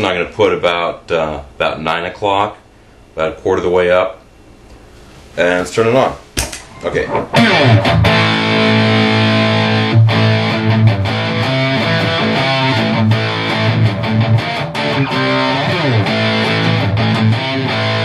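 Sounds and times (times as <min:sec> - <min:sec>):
distorted electric guitar chords: 0:07.1 - 0:18.0.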